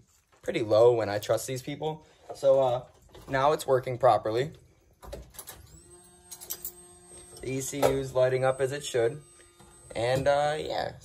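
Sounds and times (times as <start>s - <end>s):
fuel pump whine: 5.7s - 11.0s.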